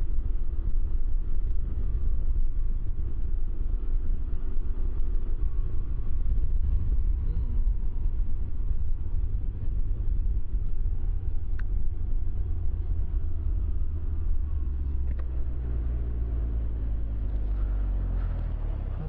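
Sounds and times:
wind rumble on microphone: 0.0s - 19.0s
three-wheeler engine slowing: 0.2s - 19.0s.

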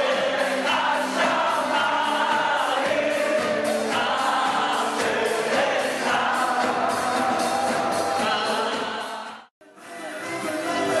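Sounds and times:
steady drum beat: 0.0s - 9.4s
choir singing: 0.0s - 9.5s.

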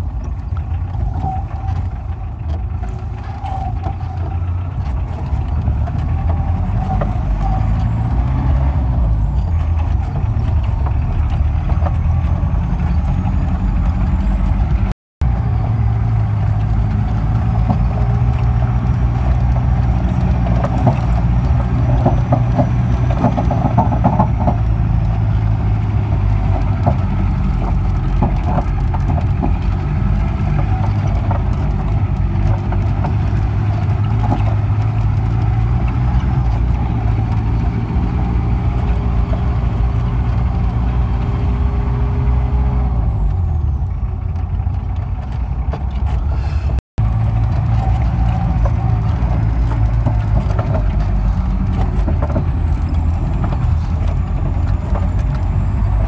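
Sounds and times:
engine running under load: 0.0s - 56.0s
knocks and rattles: 0.0s - 56.0s.

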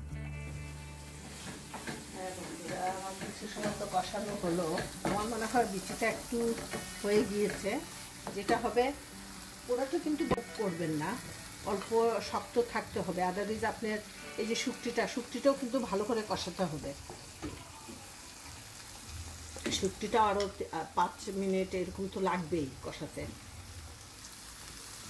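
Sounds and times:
food sizzling: 0.2s - 25.0s
spatula scraping frying pan: 1.2s - 8.7s.

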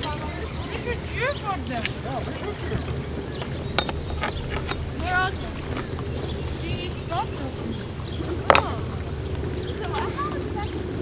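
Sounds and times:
wind rumbling on microphone: 0.0s - 11.0s.

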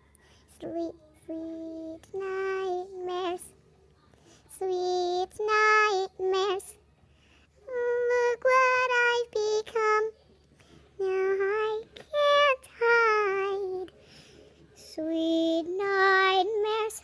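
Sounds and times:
young person singing: 0.0s - 3.5s, 4.2s - 6.8s, 7.6s - 10.1s, 11.0s - 14.0s, 14.8s - 17.0s.

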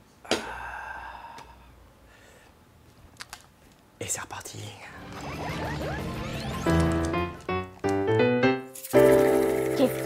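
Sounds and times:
man's breathy sigh of satisfaction: 0.2s - 2.5s.

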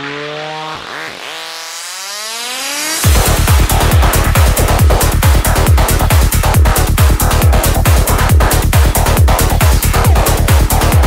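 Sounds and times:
synthesizer tone sweeping upward: 0.0s - 11.0s
kick drum: 3.0s - 11.0s.

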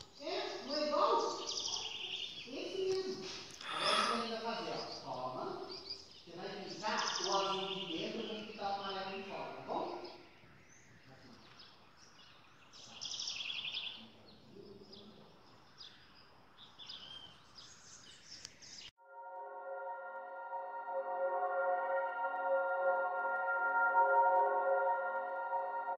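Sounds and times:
small birds chirping: 0.0s - 18.9s
faint outdoor background noise: 0.0s - 19.0s
soft ambient music: 19.0s - 25.9s.

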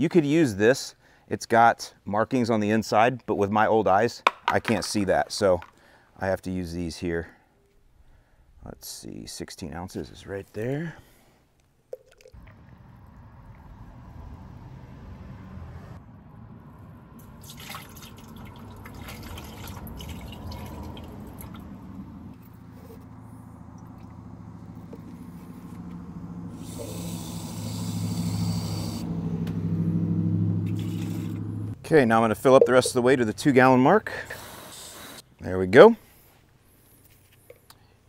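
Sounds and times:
liquid pouring into plastic: 17.4s - 21.1s.

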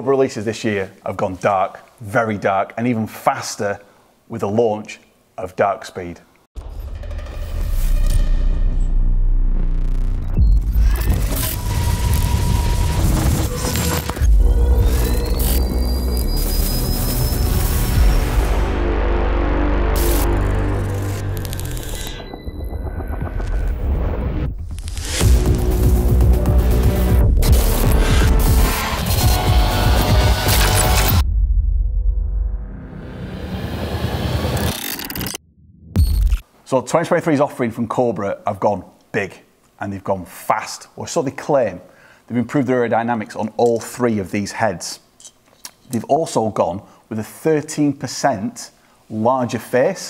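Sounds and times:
low rumble: 6.6s - 27.2s, 31.1s - 34.6s
dark electronic music: 6.6s - 35.3s
glitchy clicks: 9.8s - 18.4s, 19.9s - 25.3s, 27.4s - 31.2s, 34.5s - 35.4s.

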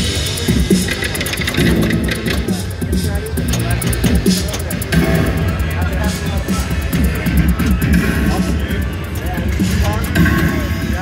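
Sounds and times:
electronic game music: 0.0s - 11.0s.

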